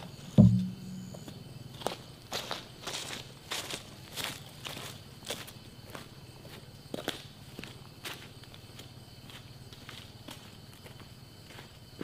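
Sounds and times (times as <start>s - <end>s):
footsteps crunching on dry leaves: 1.8s - 5.5s.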